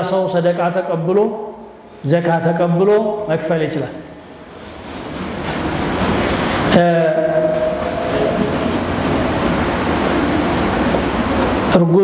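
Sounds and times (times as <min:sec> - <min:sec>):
loud rushing noise: 0:04.1 - 0:11.8
man singing long note: 0:06.9 - 0:08.7.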